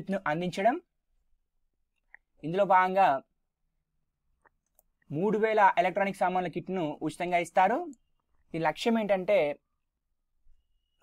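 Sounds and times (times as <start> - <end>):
narrator speaking: 0.0 - 1.0, 2.2 - 3.4, 4.8 - 10.0.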